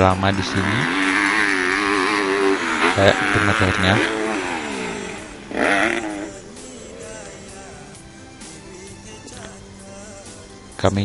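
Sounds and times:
motocross bike engine revving: 0.0 - 9.6.

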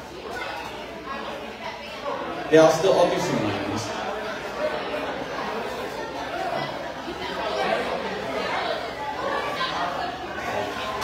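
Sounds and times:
diners chattering: 0.0 - 11.0.

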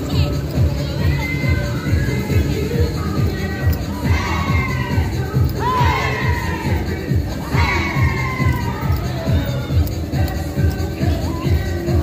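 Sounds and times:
dance music with thumping beat: 0.0 - 12.0
group shouting and whooping: 4.0 - 6.8, 7.4 - 9.1.

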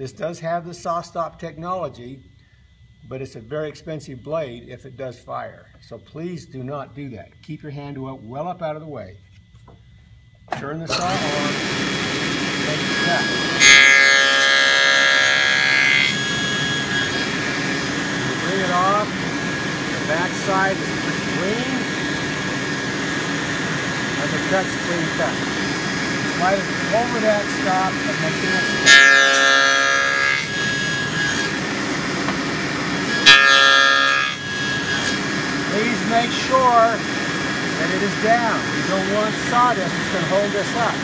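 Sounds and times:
table saw cutting whine: 10.7 - 41.0
table saw running free: 10.9 - 41.0.

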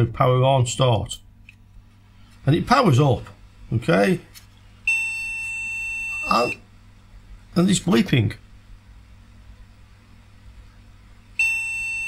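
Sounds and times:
long steady beep: 4.8 - 6.6, 11.4 - 12.0.

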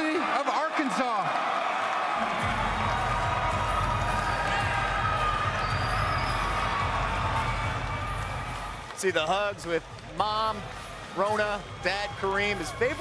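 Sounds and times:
crowd cheering and clapping: 0.0 - 13.0.

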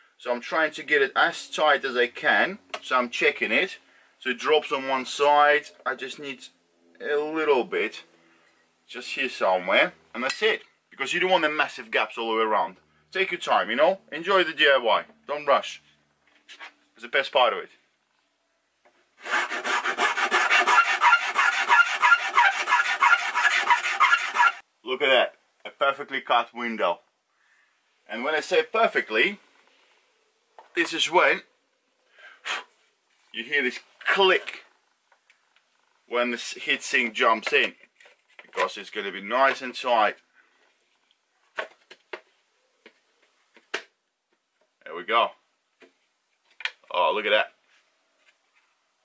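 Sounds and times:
hand file rasping on fiberglass: 19.2 - 24.6.

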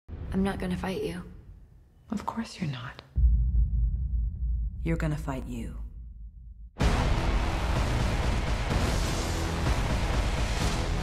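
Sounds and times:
deep low rumble: 3.2 - 6.9.

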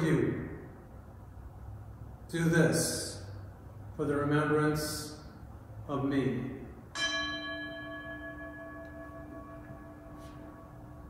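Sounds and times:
bell ringing: 7.0 - 11.0.

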